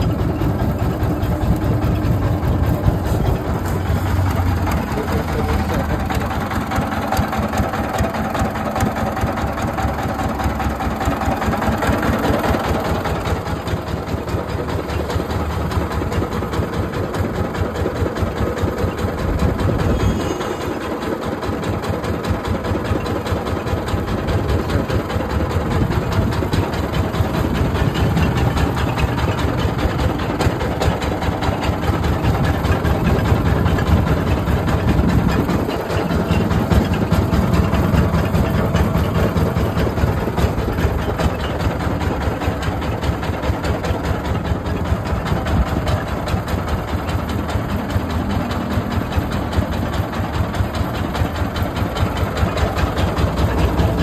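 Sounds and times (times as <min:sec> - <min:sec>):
diesel engine chugging: 0:00.0 - 0:54.0.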